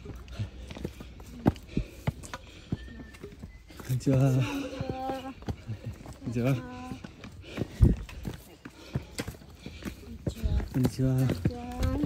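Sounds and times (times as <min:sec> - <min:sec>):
footsteps on stone steps: 0:00.0 - 0:12.0.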